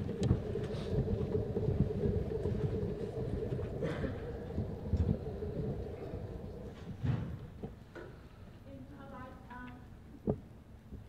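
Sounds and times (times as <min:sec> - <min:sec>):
faint steady hum: 0:00.0 - 0:11.0
low rumble of hall noise: 0:00.0 - 0:11.0.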